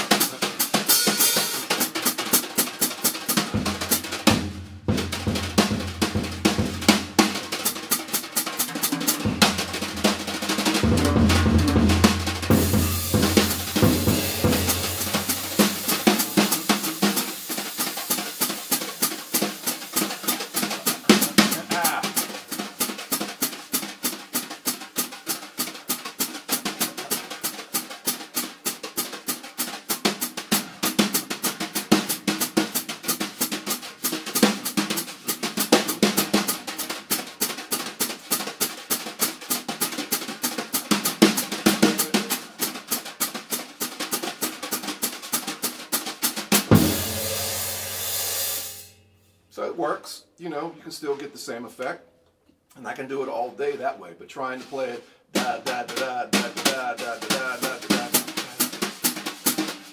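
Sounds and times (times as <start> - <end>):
drum kit played with brushes: 0.0 - 52.0, 52.7 - 59.9
cymbal ringing wash: 47.1 - 49.3.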